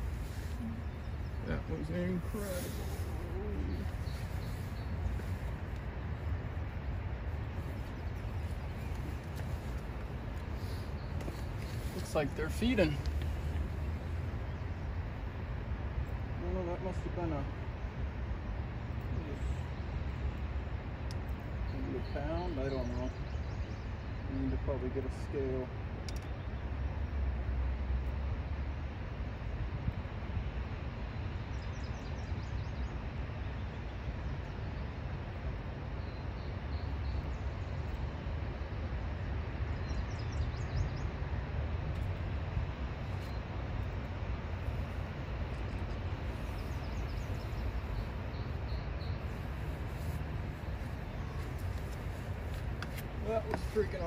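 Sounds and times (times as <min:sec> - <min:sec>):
small bird chirping: 0:00.0 - 0:05.5, 0:45.6 - 0:54.0
outdoor rumble and hiss: 0:00.0 - 0:54.0.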